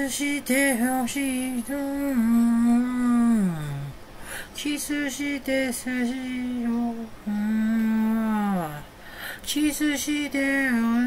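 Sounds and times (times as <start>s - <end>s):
man humming: 1.7s - 4.0s, 4.6s - 8.9s.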